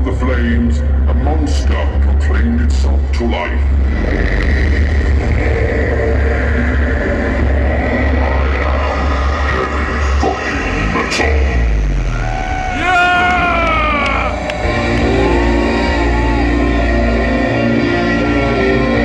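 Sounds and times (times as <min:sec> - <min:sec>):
heavy low drone: 0:00.0 - 0:19.0
pitched tones gliding downward: 0:12.4 - 0:18.4.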